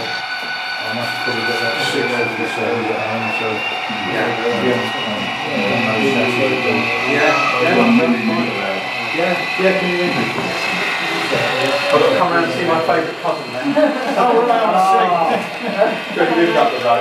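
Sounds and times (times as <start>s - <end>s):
high-pitched steady tones: 0.0s - 17.0s
people chattering: 0.8s - 17.0s.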